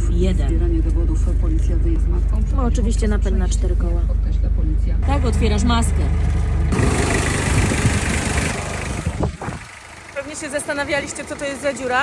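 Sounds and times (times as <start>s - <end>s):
diesel engine idling: 0.0s - 12.0s.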